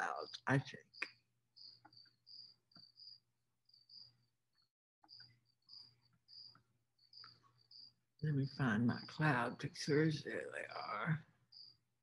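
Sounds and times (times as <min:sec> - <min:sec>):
insect chirping: 0:00.0 - 0:12.0.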